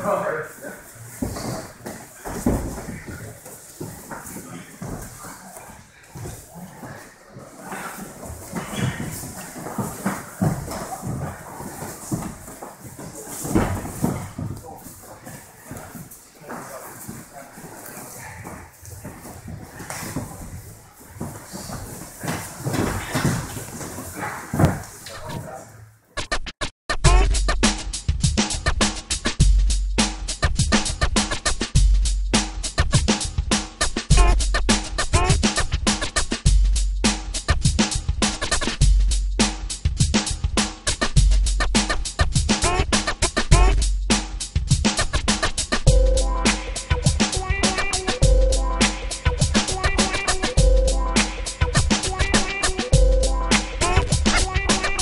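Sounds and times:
bodies thudding on mats: 1.1s - 25.1s.

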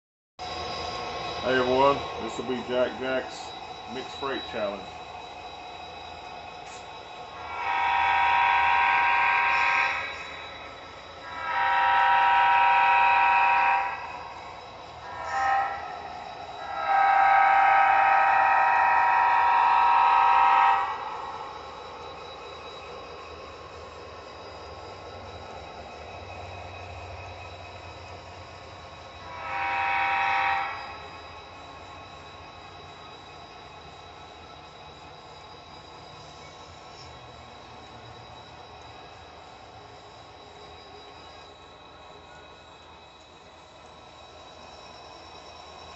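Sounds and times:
locomotive engine running: 0.4s - 45.9s
diesel locomotive horn blasts: 7.4s - 10.5s, 11.2s - 21.6s, 29.2s - 31.2s.

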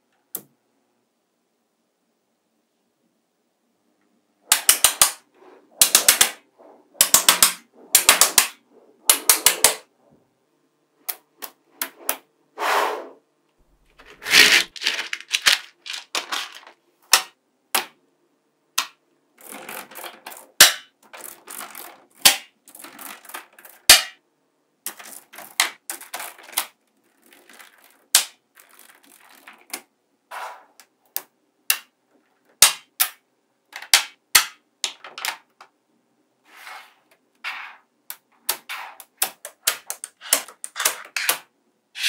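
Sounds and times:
magnetic balls clicking: 4.5s - 5.2s, 5.8s - 9.8s, 38.1s - 41.4s
magnetic balls rattling: 4.5s - 9.9s, 13.8s - 17.4s, 19.4s - 23.9s, 24.8s - 29.9s.

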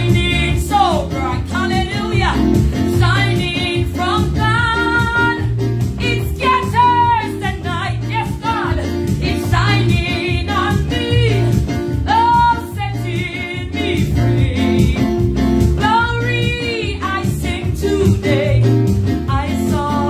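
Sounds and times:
electronic keyboard accompaniment: 0.0s - 20.0s
woman singing gospel song: 0.0s - 20.0s.

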